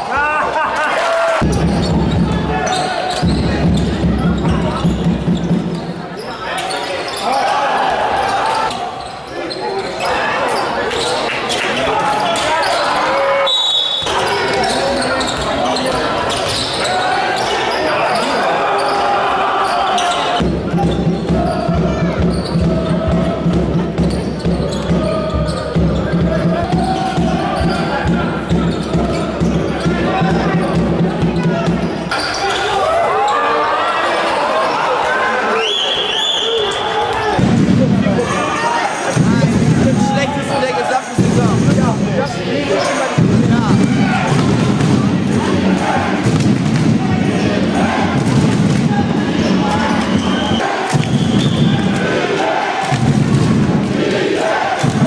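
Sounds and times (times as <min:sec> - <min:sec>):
echoing indistinct voices: 0:00.0 - 0:55.0
referee's whistle: 0:13.4 - 0:15.4, 0:35.5 - 0:37.0, 0:50.0 - 0:51.9
basketball bouncing on court: 0:20.4 - 0:32.0.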